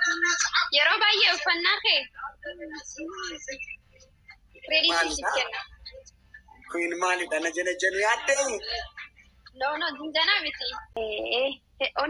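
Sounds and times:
woman talking: 0:00.0 - 0:03.8, 0:04.6 - 0:06.6, 0:08.6 - 0:12.0.

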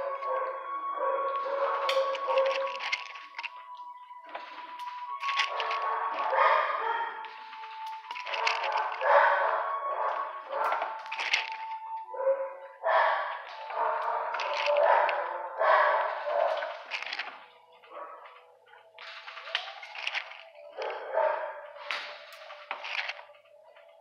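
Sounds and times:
dogs barking: 0:00.0 - 0:24.0.

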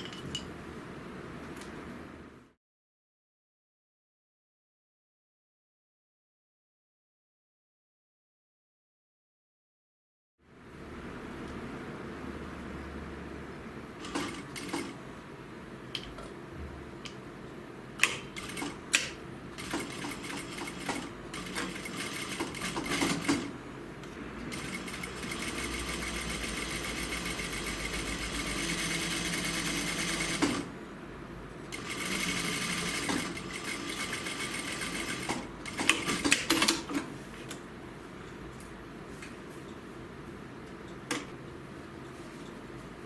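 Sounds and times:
sewing machine stitching: 0:18.4 - 0:23.5, 0:24.5 - 0:30.7, 0:31.7 - 0:37.0.

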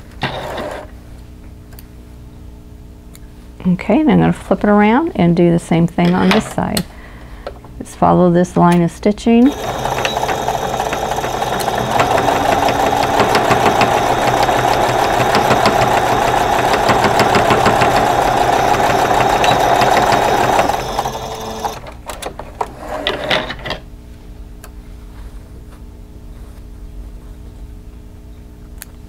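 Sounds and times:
sewing machine stitching: 0:09.4 - 0:22.0.

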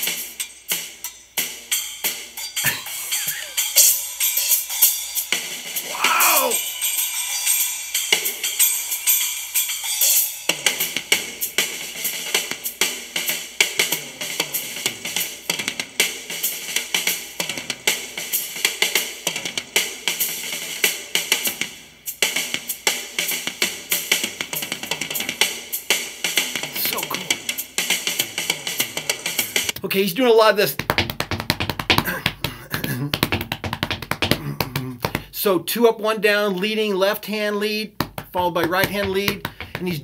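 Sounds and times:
rock drum solo: 0:00.0 - 0:06.8, 0:09.8 - 0:35.3, 0:37.9 - 0:40.0.

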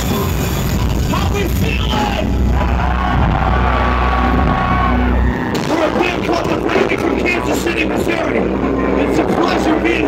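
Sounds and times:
harsh vocal: 0:00.0 - 0:03.8, 0:05.6 - 0:10.0
live metal band: 0:00.0 - 0:10.0.

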